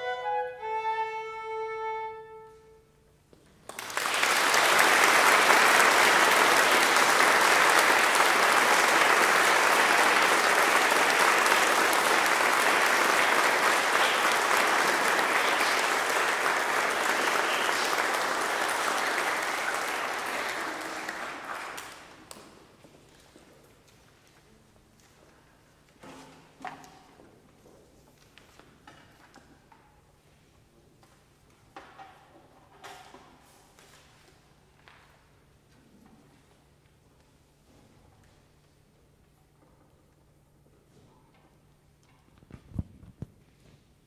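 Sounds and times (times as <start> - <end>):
audience applause: 3.7 - 22.3.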